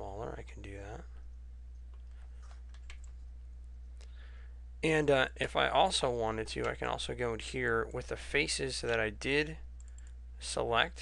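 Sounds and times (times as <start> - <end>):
low electrical hum: 0.0 - 11.0
keyboard and mouse clicks: 1.7 - 3.2.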